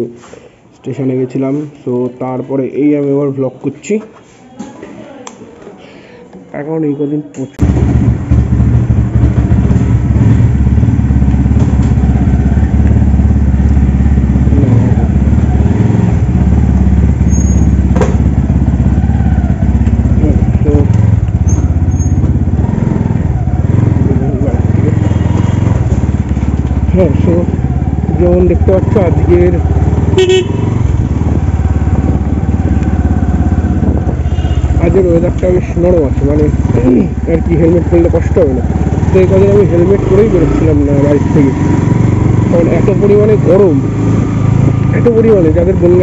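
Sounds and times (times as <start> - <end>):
motorcycle engine idling and pulling away: 7.6 - 46.0.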